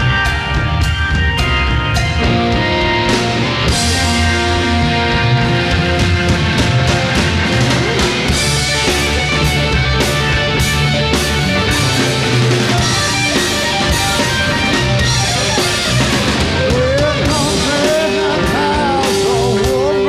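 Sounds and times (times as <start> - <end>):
drum kit: 0.0 - 20.0
electric guitar: 0.0 - 20.0.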